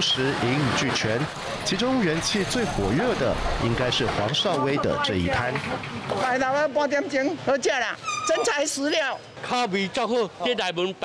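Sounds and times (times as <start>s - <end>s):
customers talking: 0.0s - 11.0s.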